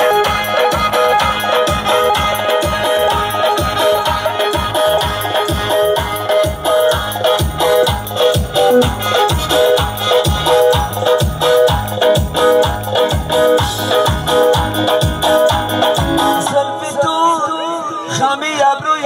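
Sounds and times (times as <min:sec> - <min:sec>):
programmed drum beat: 0:00.0 - 0:16.7
electronic keyboard music: 0:00.0 - 0:17.7
person singing: 0:00.0 - 0:18.3.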